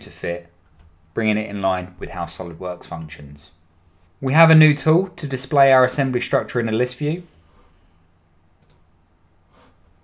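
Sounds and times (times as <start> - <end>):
faint computer mouse clicks: 8.6 - 8.9.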